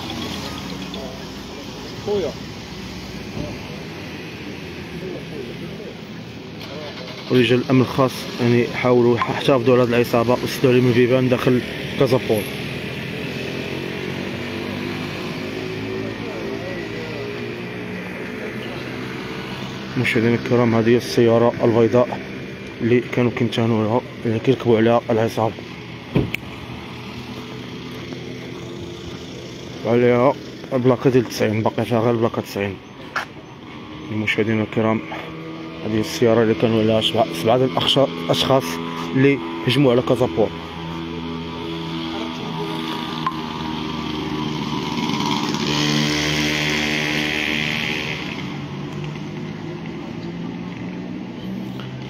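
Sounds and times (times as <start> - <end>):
street background noise: 0.0 - 52.0
vehicle engine running: 0.0 - 52.0.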